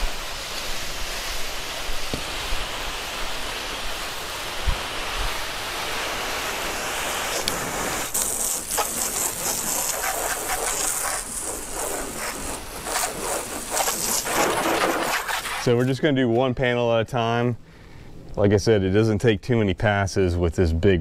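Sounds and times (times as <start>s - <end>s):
hose water spraying on car: 0.0s - 16.0s.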